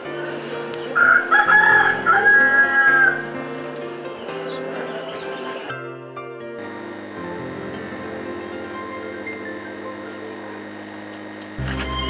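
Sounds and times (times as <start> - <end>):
soft background music: 0.0 - 12.0
rooster crowing: 0.8 - 3.8.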